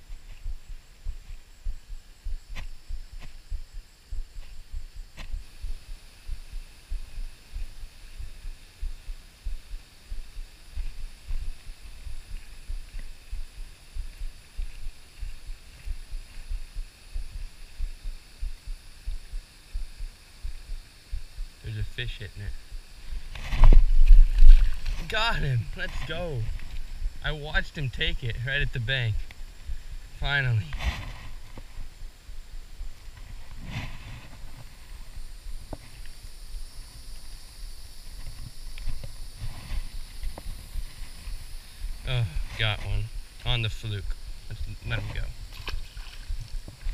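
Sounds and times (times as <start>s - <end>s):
low thumps and rumble: 0.0s - 27.3s
faint high hiss: 0.0s - 46.9s.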